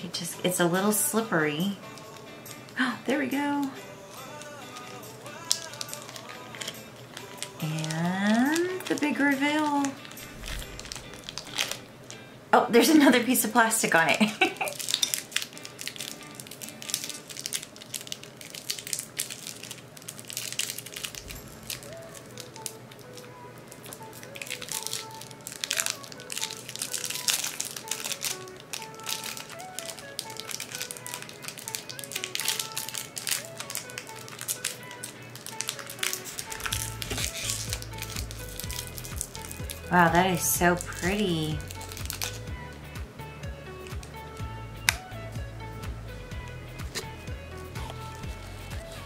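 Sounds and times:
quiet background music: 0.0s - 49.0s
plastic wrapping crinkling: 1.7s - 2.9s, 3.7s - 12.2s, 14.2s - 42.8s, 43.8s - 45.2s, 46.3s - 49.0s.

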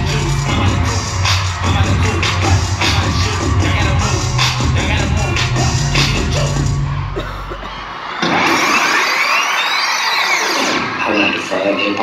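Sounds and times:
hip-hop backing music: 0.0s - 12.0s.

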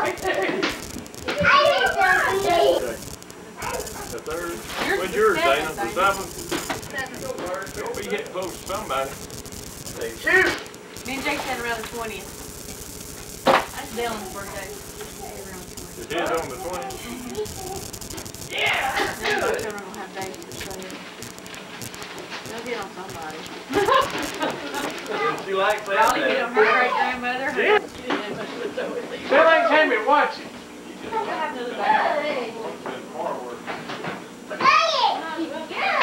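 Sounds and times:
adults and child chattering: 0.0s - 8.8s, 13.6s - 21.2s, 22.2s - 33.5s, 34.5s - 36.0s.

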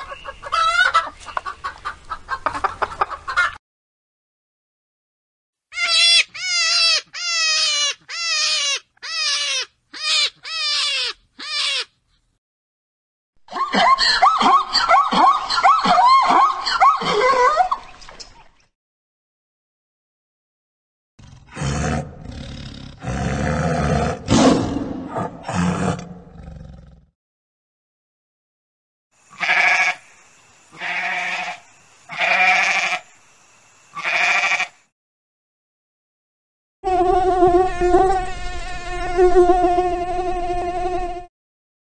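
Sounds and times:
rabbit squealing: 5.7s - 12.0s
goat bleating: 29.3s - 30.0s, 30.8s - 33.0s, 34.0s - 34.8s.

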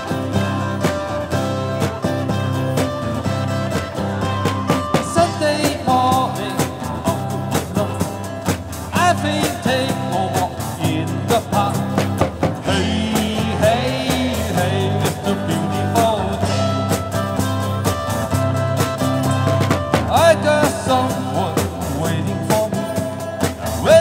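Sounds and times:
live pop-rock band playing: 0.0s - 24.0s
steady drumbeat: 0.0s - 24.0s.

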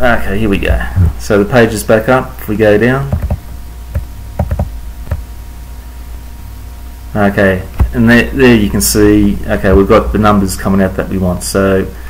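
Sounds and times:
steady low hum: 0.0s - 12.0s
computer mouse clicks: 3.1s - 5.2s.

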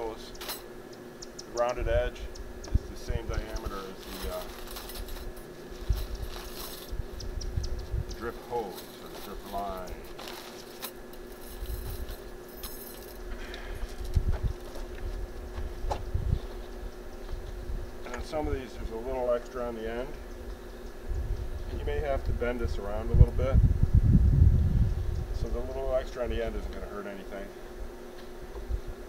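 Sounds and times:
steady low hum: 0.0s - 29.0s
plastic bag rustling: 3.8s - 7.0s, 8.6s - 13.2s.

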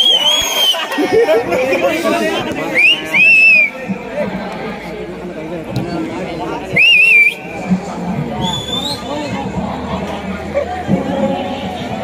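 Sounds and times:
faint higher whistle: 0.0s - 0.9s, 2.7s - 3.8s, 6.8s - 7.6s, 8.4s - 9.1s
crowd chatter: 0.0s - 12.0s.

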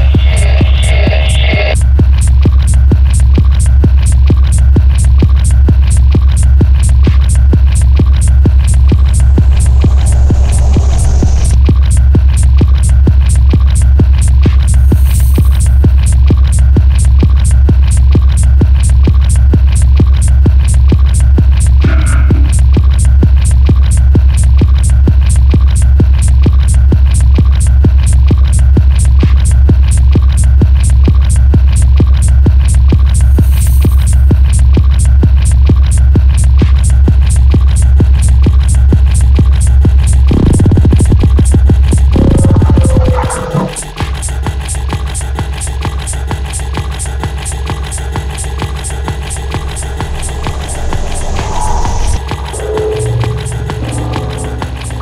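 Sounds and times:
droning bass: 0.0s - 44.6s, 47.9s - 55.0s
fast kick drum beat: 0.0s - 50.6s
high swish: 8.6s - 11.6s, 49.4s - 55.0s.

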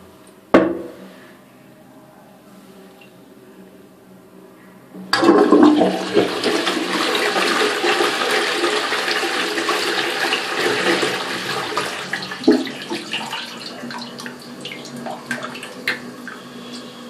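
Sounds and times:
toilet flushing: 5.1s - 17.0s.

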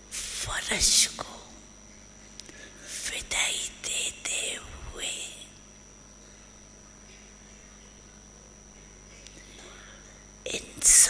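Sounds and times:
faint steady hum: 0.0s - 11.0s
person speaking softly: 0.1s - 1.6s.

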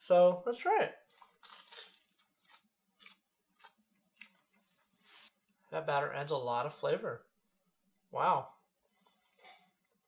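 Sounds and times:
crunchy bite and chewing: 1.2s - 4.6s.

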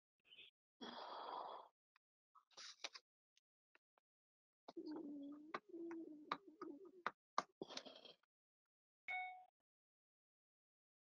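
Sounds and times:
paper rustling: 2.5s - 3.0s.

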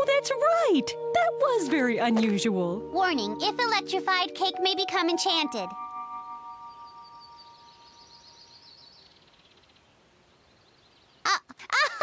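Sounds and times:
girl laughing: 11.3s - 12.0s.

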